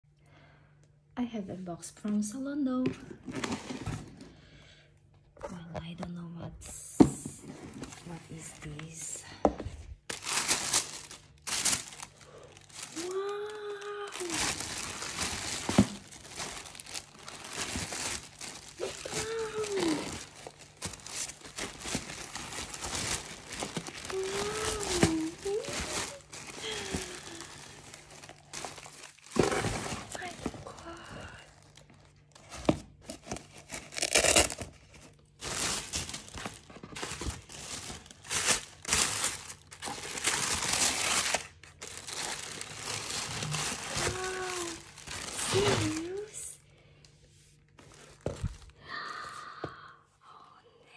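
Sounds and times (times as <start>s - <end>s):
packaging rustling: 7.4s - 46.4s, 47.6s - 48.8s.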